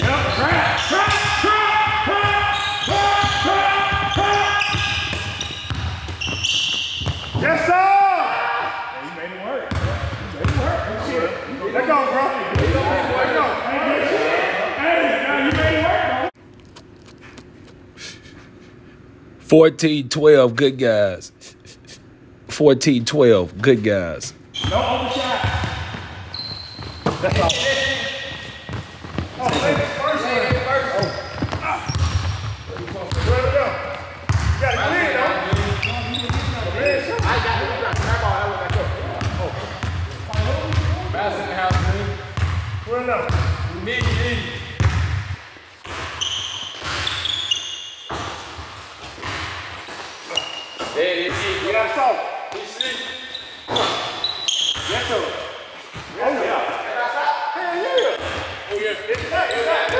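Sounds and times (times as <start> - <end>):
basketball bouncing on court: 0.0 - 7.4, 9.7 - 10.8, 12.5 - 12.8, 24.6 - 34.8, 35.4 - 49.9
players calling out: 0.0 - 16.3, 22.5 - 44.6.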